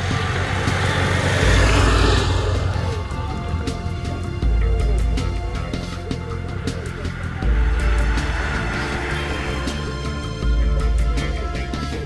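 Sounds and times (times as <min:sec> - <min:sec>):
motorcycle passing by: 0:00.0 - 0:12.0.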